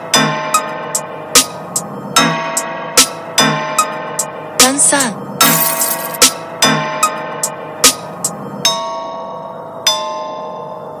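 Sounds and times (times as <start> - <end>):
bell-like tone ringing: 5.4 - 6.2.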